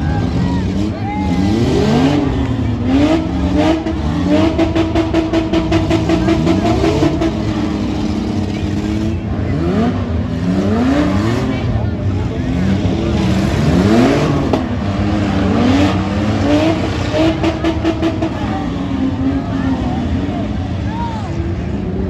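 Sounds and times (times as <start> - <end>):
minivan engines revving hard: 0.0 - 22.0.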